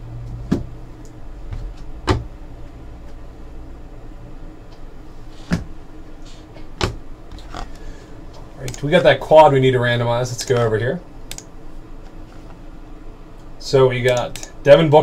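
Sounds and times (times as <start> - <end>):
low hum: 0.0 - 15.0
sharp clicks at a desk: 11.3 - 11.5.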